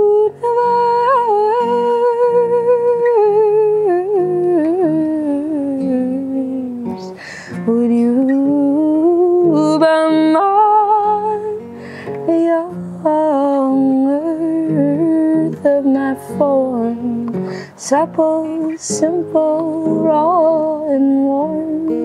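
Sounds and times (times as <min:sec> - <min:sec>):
acoustic guitar: 0:00.0 - 0:22.0
woman singing wordlessly: 0:00.0 - 0:22.0
breath: 0:07.1 - 0:07.6, 0:11.7 - 0:12.2, 0:17.4 - 0:17.8.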